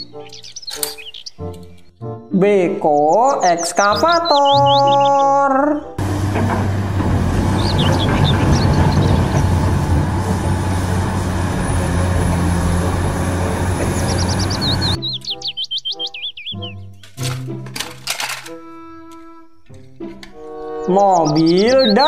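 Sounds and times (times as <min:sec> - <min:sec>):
cheerful background music: 0:00.0 - 0:06.0, 0:14.2 - 0:22.0
excavator diesel engine under load: 0:06.0 - 0:15.0.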